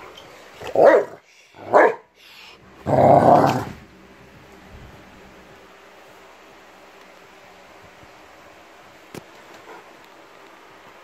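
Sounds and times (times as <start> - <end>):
dog play growl: 2.8 - 3.8.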